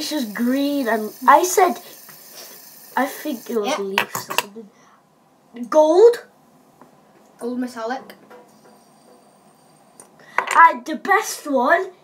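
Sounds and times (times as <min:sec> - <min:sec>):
faint high whine: 0:08.4 - 0:10.1.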